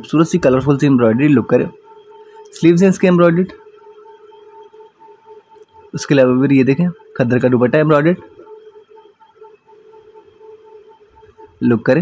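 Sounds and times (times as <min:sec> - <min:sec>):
faint steady hum: 0:00.0 - 0:12.0
pulsing high tone: 0:00.0 - 0:12.0.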